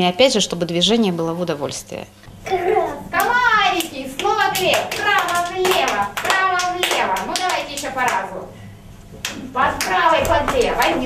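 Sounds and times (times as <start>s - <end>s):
quick regular hand claps: 3.2s - 8.4s, 9.2s - 11.0s.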